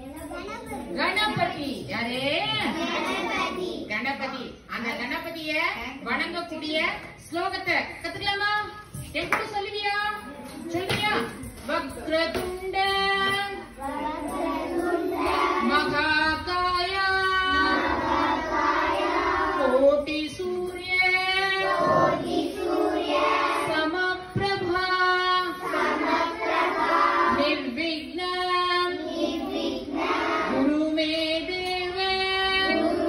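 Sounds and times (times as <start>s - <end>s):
woman chanting: 10.8s - 13.8s, 15.6s - 18.0s, 19.5s - 22.2s, 23.6s - 25.7s
children chanting in unison: 13.8s - 15.9s, 17.4s - 19.8s, 21.4s - 23.9s, 25.5s - 27.4s, 28.9s - 30.7s, 32.6s - 33.0s.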